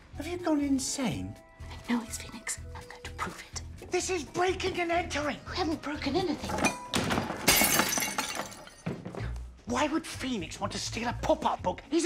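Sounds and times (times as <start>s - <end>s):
ceramic vase smashing: 6.4s - 9.2s.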